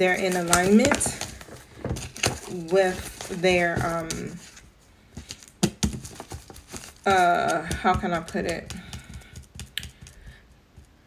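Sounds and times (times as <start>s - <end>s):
cards being shuffled: 0.0s - 4.6s, 5.2s - 10.9s.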